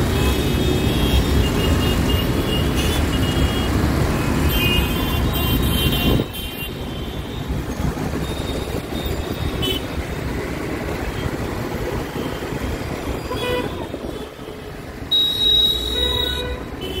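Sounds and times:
vehicle horns honking: 0:00.0 - 0:07.5, 0:13.2 - 0:14.5, 0:15.1 - 0:17.0
busy road traffic: 0:00.0 - 0:17.0.

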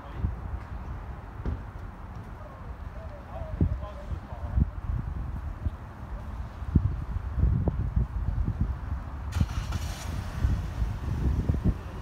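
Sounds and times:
traffic noise: 0:00.0 - 0:12.0
wind rumbling on microphone: 0:00.0 - 0:12.0
passing vehicle hiss: 0:09.3 - 0:12.0.

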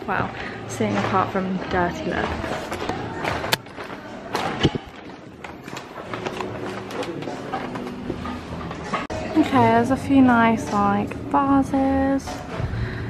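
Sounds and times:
quiet background music: 0:00.0 - 0:13.0.

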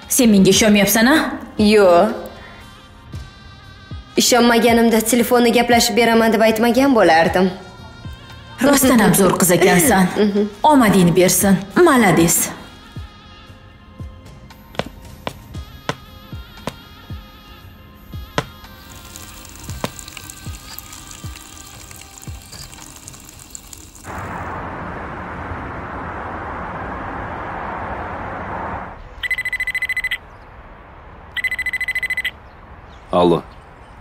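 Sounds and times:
soft background music: 0:00.0 - 0:24.1
telephone ringing: 0:29.2 - 0:30.2, 0:31.4 - 0:32.3.

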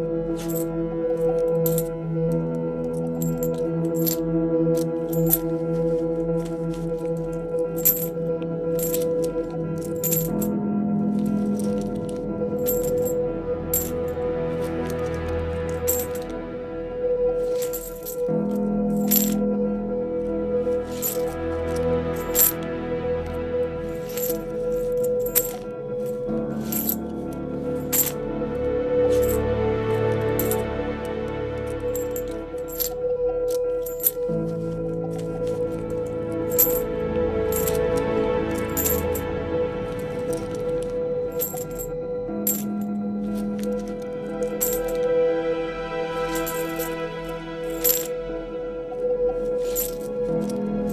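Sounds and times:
background music of sustained notes: 0:00.0 - 0:50.9
coins dropping and clinking: 0:00.4 - 0:04.2, 0:04.8 - 0:10.5, 0:11.1 - 0:16.4, 0:17.4 - 0:19.5, 0:20.7 - 0:22.7, 0:23.3 - 0:28.2, 0:29.1 - 0:29.4, 0:30.0 - 0:31.0, 0:31.6 - 0:45.1, 0:46.2 - 0:47.0, 0:47.7 - 0:48.1, 0:49.5 - 0:50.9.

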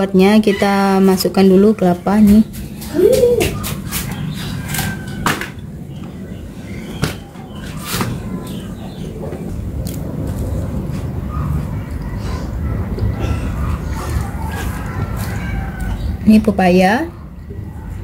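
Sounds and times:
birds calling: 0:00.2 - 0:18.0
steady low background noise: 0:04.1 - 0:18.0.

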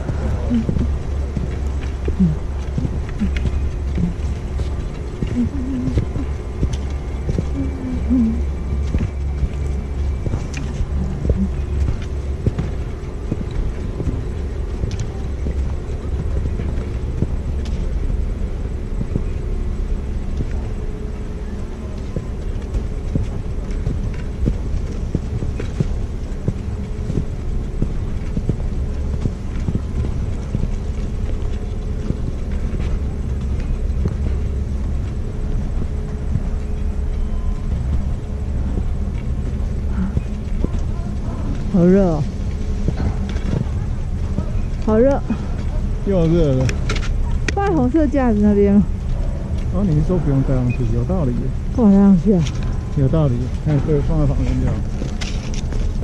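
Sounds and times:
footsteps crunching on snow: 0:00.0 - 0:47.9
faint steady hum: 0:00.0 - 0:56.0
wind buffeting microphone: 0:00.0 - 0:56.0.

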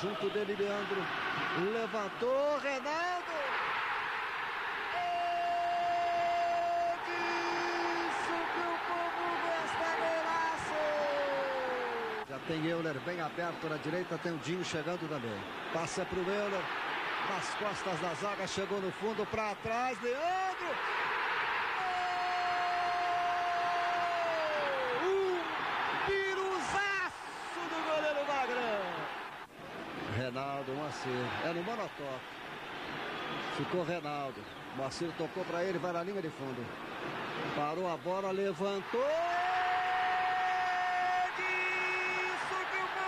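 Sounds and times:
excited commentary: 0:00.0 - 0:03.7, 0:04.9 - 0:20.8, 0:21.8 - 0:29.2, 0:37.6 - 0:43.0
stadium crowd noise: 0:00.0 - 0:43.0
commentator shouting goal: 0:04.9 - 0:12.2, 0:38.4 - 0:43.0.

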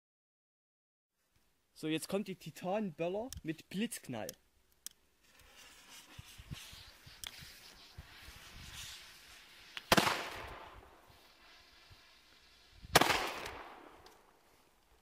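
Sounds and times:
firecracker bangs with echo: 0:09.9 - 0:10.9, 0:12.9 - 0:14.0.

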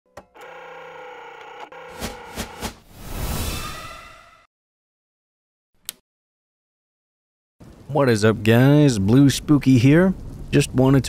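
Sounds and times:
electronic hum of held tones: 0:00.2 - 0:01.9.

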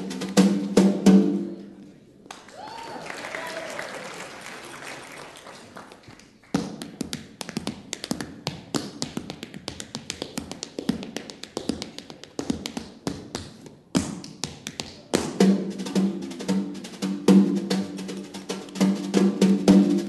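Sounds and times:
snare drum: 0:00.0 - 0:01.6, 0:15.2 - 0:20.0
tap shoes on stage floor: 0:05.9 - 0:15.6.

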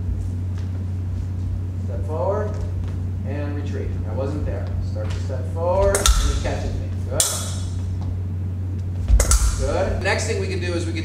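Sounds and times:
steady low hum: 0:00.0 - 0:11.0
sharp click: 0:09.2 - 0:09.7.

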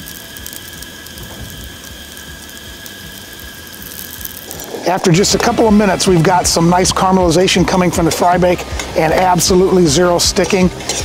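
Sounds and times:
sweet potato sizzling in hot oil: 0:00.0 - 0:11.0.

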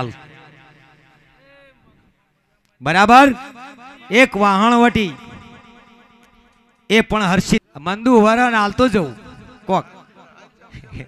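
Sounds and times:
man speaking over public address: 0:00.0 - 0:00.4, 0:02.8 - 0:05.6, 0:06.9 - 0:10.1
voice echo: 0:00.0 - 0:11.0.

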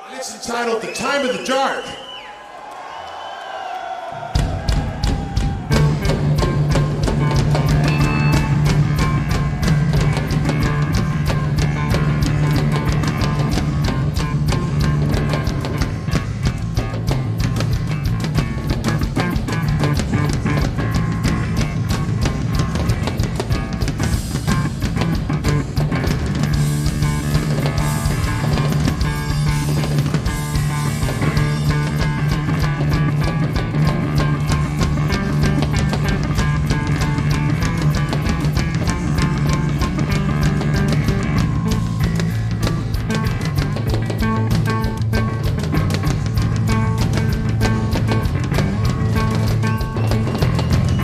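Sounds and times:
drum kit with cymbals: 0:04.3 - 0:51.0
electric bass line: 0:04.4 - 0:51.0
electric guitar: 0:04.4 - 0:51.0.

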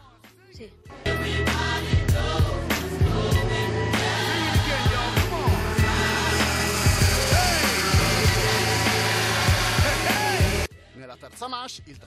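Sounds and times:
music: 0:00.0 - 0:12.0
racing kart engines buzzing: 0:05.6 - 0:10.7.

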